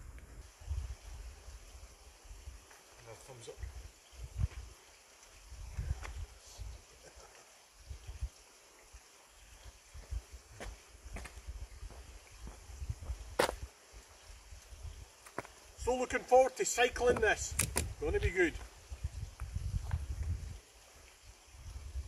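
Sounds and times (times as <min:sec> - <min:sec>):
wind buffeting microphone: 0:03.6 - 0:04.8, 0:05.5 - 0:06.8, 0:07.8 - 0:08.4, 0:09.9 - 0:13.7, 0:16.9 - 0:20.6, 0:21.5 - 0:22.0
sharp clicks: 0:17.5 - 0:17.9.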